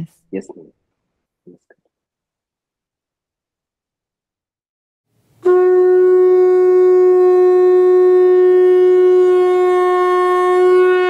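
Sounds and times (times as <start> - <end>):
horn-like wind instrument note: 5.4 - 11.0.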